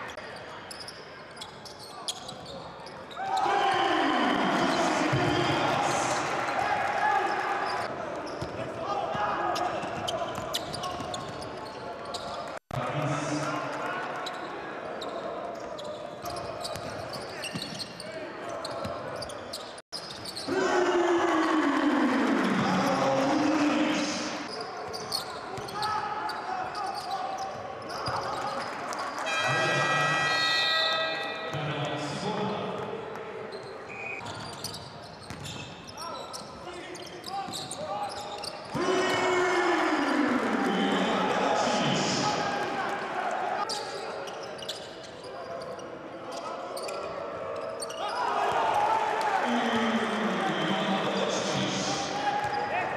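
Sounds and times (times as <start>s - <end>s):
crowd noise: 0.0s - 52.9s
horn-like tone: 29.3s - 31.6s
basketball bouncing on court: 35.2s - 35.6s.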